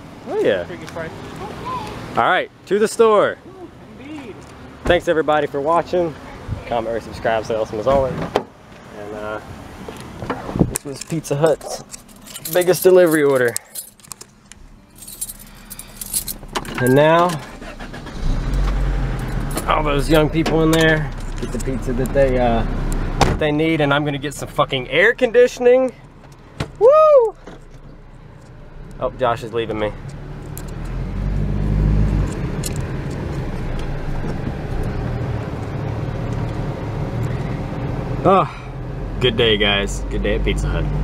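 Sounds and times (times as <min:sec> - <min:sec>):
car engine and road noise: 0:00.0 - 0:41.0
car keys jangling: 0:10.8 - 0:18.6, 0:19.2 - 0:19.7, 0:20.7 - 0:21.8, 0:29.5 - 0:31.0, 0:32.2 - 0:34.2.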